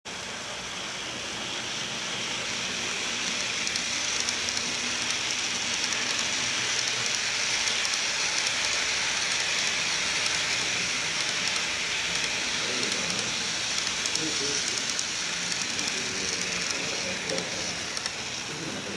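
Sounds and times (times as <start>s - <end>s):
model train wheels rumbling: 0.1s - 18.9s.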